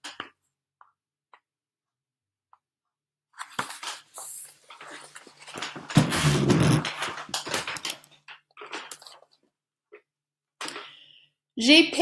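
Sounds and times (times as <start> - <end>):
book pages turning: 3.3 - 10.0.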